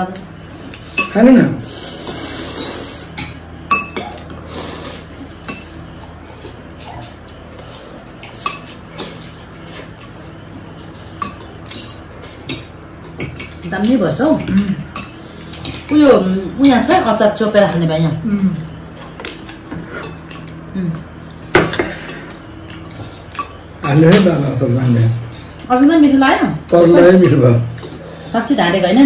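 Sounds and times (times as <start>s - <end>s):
forks clinking against glass bowls: 1.0s - 1.3s, 3.2s - 4.5s, 8.2s - 8.8s, 11.2s - 16.0s, 19.9s - 24.4s, 26.9s - 28.0s
metal utensils clinking on plates: 19.2s - 24.5s, 26.9s - 28.0s.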